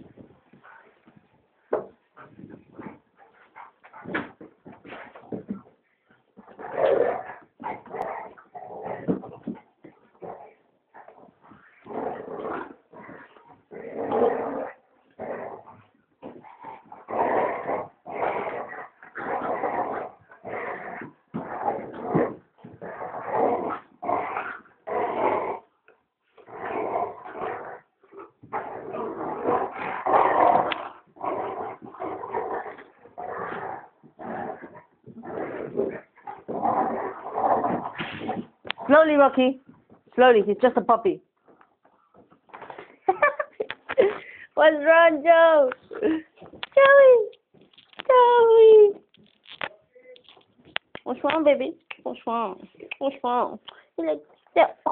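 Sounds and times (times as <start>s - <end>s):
dogs growling in play: 1.7s - 39.0s.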